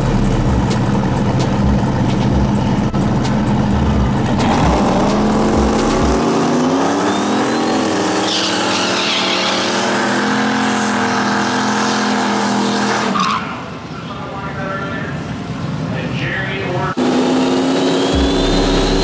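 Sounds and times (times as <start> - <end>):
car engine revving: 0.0 - 13.8, 16.9 - 19.0.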